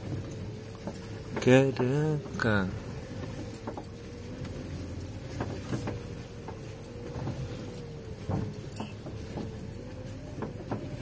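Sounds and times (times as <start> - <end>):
car engine and road rumble: 0.0 - 11.0
car rattles and knocks: 0.0 - 11.0.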